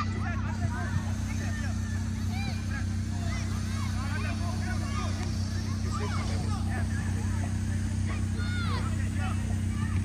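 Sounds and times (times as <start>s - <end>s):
distant children shouting: 0.0s - 7.4s, 8.0s - 10.0s
low hum: 0.0s - 10.0s.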